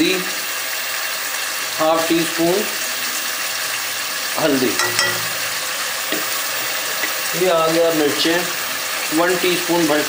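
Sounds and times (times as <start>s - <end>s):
food sizzling in hot oil: 0.2s - 10.0s.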